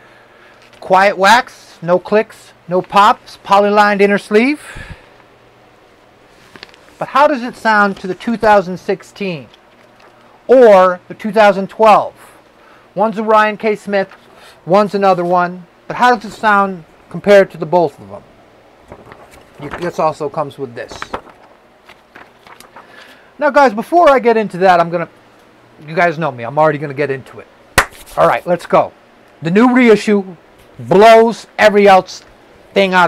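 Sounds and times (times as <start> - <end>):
paper crackling and rustling: 6.4 - 8.5, 9.4 - 10.3, 18.8 - 23.2.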